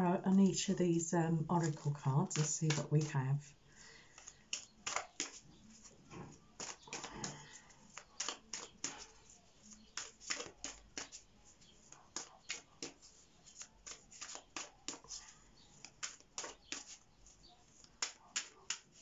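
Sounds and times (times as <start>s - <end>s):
cards being shuffled: 1.6s - 3.2s, 3.8s - 19.0s.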